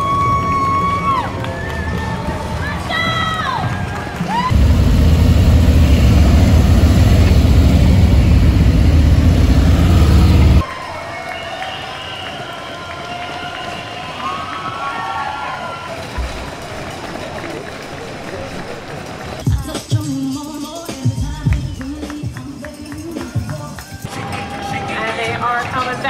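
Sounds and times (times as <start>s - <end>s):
motorcycle engines running loud: 4.4s - 10.6s
crowd voices: 23.2s - 26.0s.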